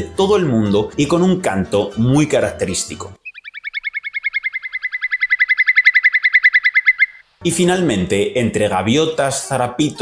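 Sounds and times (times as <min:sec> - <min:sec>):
bird rapid trill: 0:03.2 - 0:07.3.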